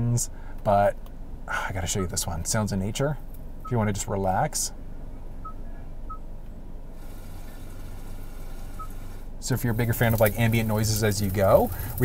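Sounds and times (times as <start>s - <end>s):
rain-like hiss from car speakers: 6.8s - 12.0s.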